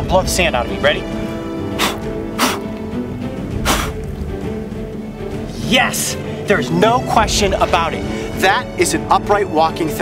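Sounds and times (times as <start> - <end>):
background music: 0.0 - 10.0
man blowing short puffs: 1.6 - 2.8, 3.6 - 4.0.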